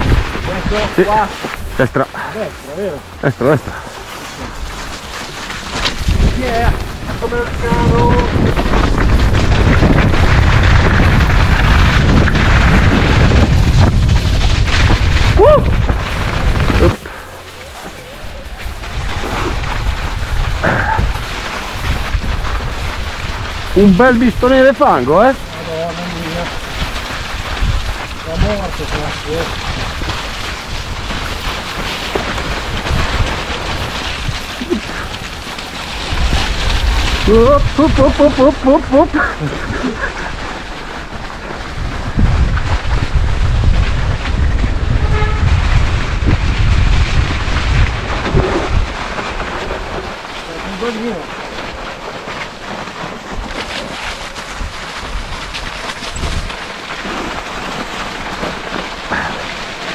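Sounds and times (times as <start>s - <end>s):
wind buffeting microphone: 0.0s - 4.8s, 5.7s - 50.8s, 51.7s - 58.4s
bike tyres rolling on snow and stones: 0.0s - 59.9s.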